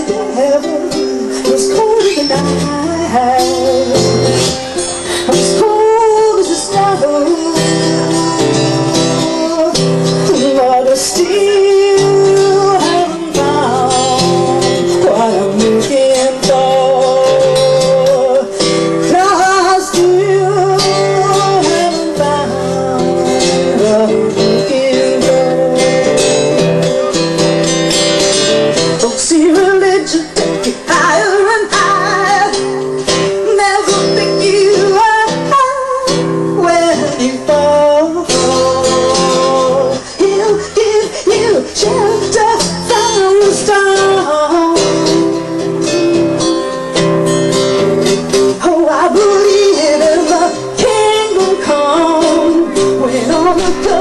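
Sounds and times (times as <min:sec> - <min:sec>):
woman singing: 0:00.0 - 0:27.5, 0:28.8 - 0:47.5, 0:48.1 - 0:54.0
acoustic guitar strumming: 0:00.0 - 0:54.0.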